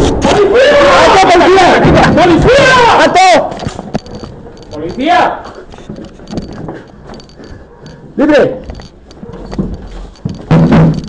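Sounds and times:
shouting voices: 0.2s - 3.6s
man shouting: 0.3s - 3.5s
rustling: 3.4s - 11.0s
knocks and clicks: 3.6s - 5.1s, 5.7s - 8.0s, 8.6s - 11.0s.

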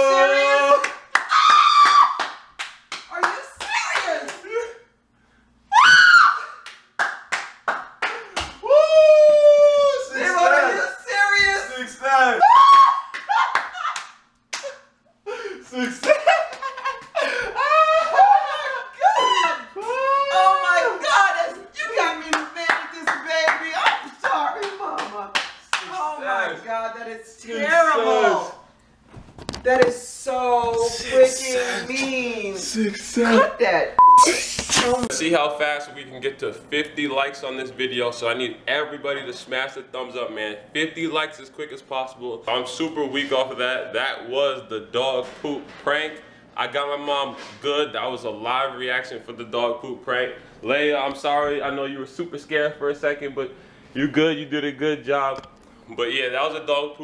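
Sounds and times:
people whooping and yelling: 0.0s - 2.3s, 5.7s - 6.6s, 8.6s - 10.2s, 12.4s - 14.0s, 17.3s - 21.1s
sharp hand claps: 0.8s - 4.4s, 6.6s - 8.6s, 22.3s - 25.9s
laughter: 15.6s - 19.0s.

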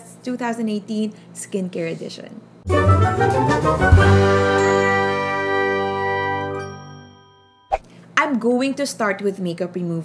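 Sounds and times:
bell-like music sting chord: 4.0s - 7.7s.

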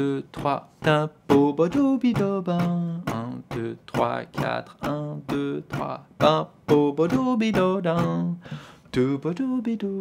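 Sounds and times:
man scat-singing: 0.0s - 9.6s.

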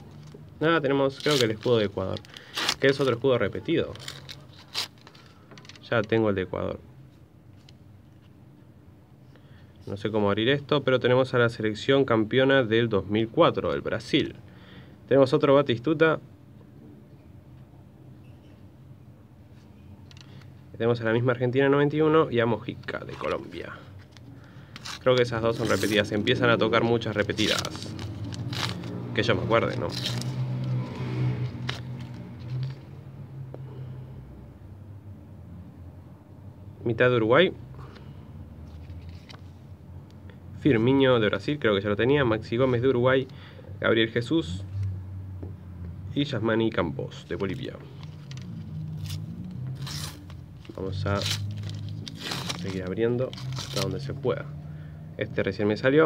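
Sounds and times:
paper packet tearing: 1.0s - 5.9s, 22.9s - 32.8s, 47.4s - 54.2s
paper crinkling and rustling: 1.0s - 6.1s, 22.8s - 30.8s, 31.4s - 32.8s, 47.4s - 54.2s
foil wrapper rustling: 49.8s - 54.1s.

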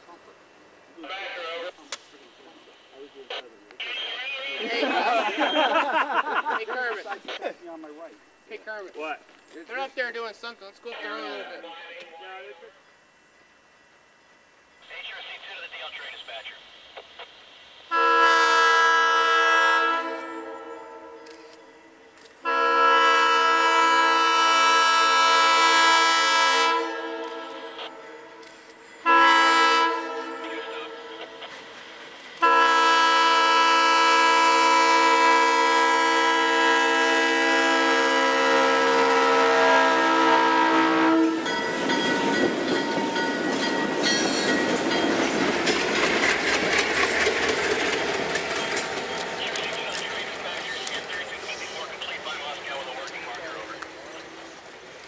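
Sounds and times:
locomotive air horn blasts: 17.9s - 21.6s, 22.4s - 28.4s, 29.0s - 31.3s, 32.4s - 41.5s
wheels clicking over rail joints: 41.4s - 51.2s
diesel engines rumbling: 41.6s - 55.0s.

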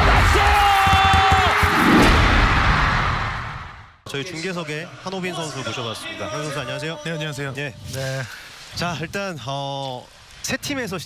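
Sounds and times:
crowd cheering: 0.0s - 3.9s.

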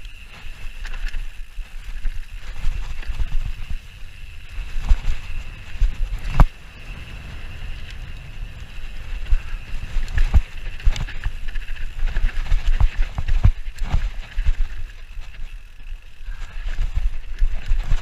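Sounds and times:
bike rattling over bumps: 0.0s - 18.0s
bike tyres rumbling on dirt: 0.0s - 18.0s.

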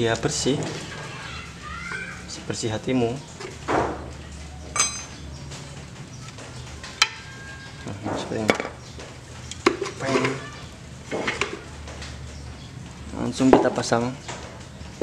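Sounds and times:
metal parts and tools clinking: 4.7s - 5.6s.

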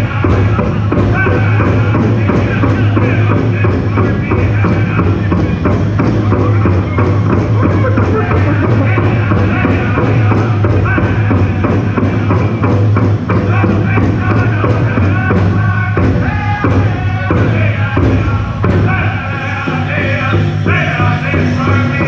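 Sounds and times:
group singing together: 0.0s - 22.0s
large drum steady beat: 0.0s - 22.0s.

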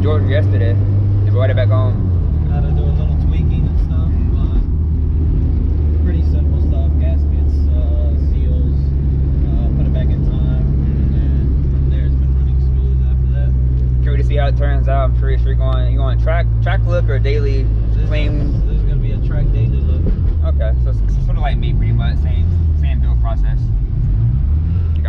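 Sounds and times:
car engine drone inside cabin: 0.0s - 25.0s.

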